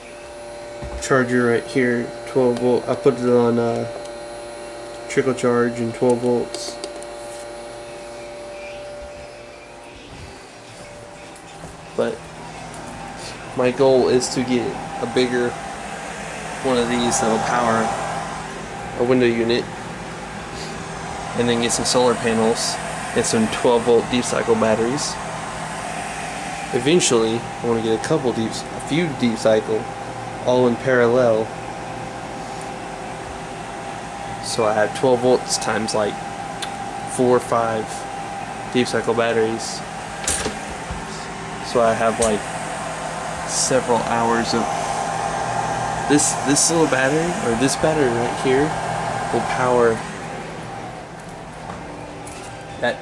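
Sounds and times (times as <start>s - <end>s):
electric fans whirring: 0.0s - 53.0s.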